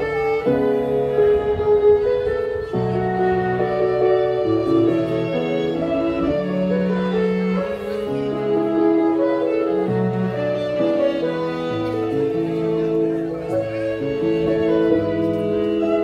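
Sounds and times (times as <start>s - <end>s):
cello bass line: 0.0s - 16.0s
electric keyboard chords: 0.0s - 16.0s
violin sustained notes: 0.0s - 16.0s.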